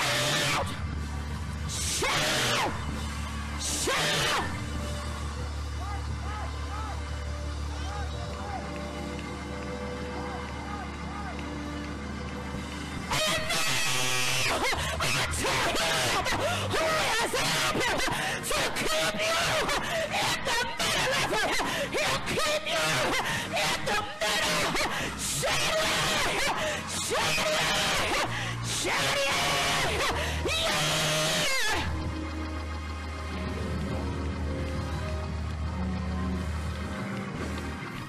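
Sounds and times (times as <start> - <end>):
crowd shouting and whooping: 0.0 - 38.0
music with low bass line: 0.0 - 38.0
crowd clapping fast: 0.1 - 25.1, 25.8 - 38.0
held chords over bass line: 24.9 - 38.0.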